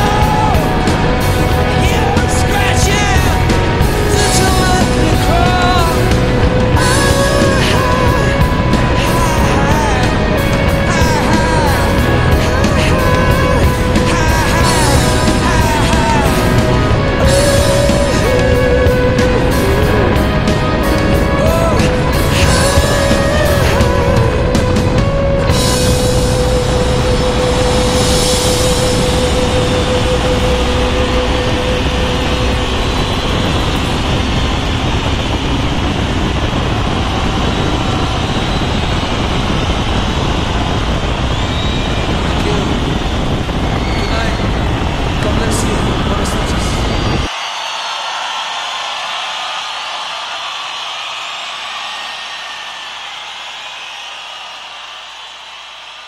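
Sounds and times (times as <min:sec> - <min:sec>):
song playing: 0:00.0 - 0:38.2
wind rush: 0:00.0 - 0:47.4.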